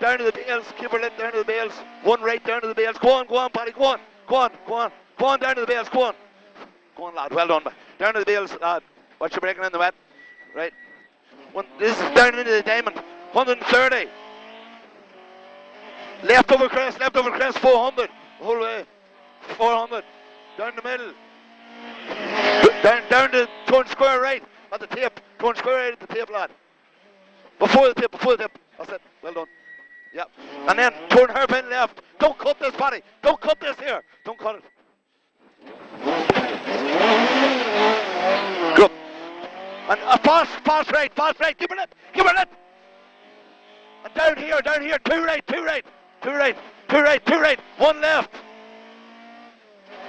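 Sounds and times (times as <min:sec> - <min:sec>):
road and tyre noise: 0:00.0 - 0:50.0
car engine accelerating: 0:00.1 - 0:07.8, 0:10.6 - 0:29.4, 0:30.2 - 0:34.0, 0:35.5 - 0:50.0
car engine from inside cabin: 0:48.4 - 0:50.0.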